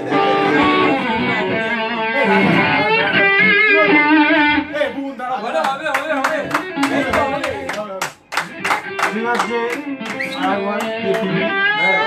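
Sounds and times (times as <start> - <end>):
electric guitar notes: 0.0 - 5.0, 6.4 - 7.7, 8.4 - 12.0
people clapping rhythmically: 5.5 - 11.6.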